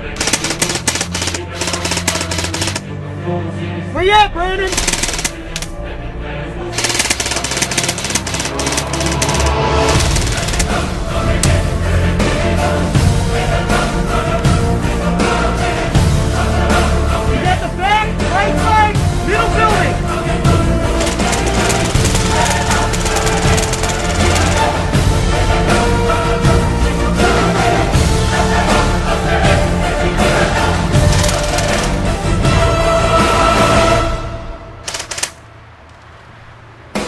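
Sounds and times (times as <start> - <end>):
airsoft rifle firing full auto: 0.0 - 2.8, 4.7 - 5.7, 6.8 - 10.8, 21.0 - 24.8, 31.1 - 32.0, 34.9 - 35.4
background music: 0.0 - 35.7.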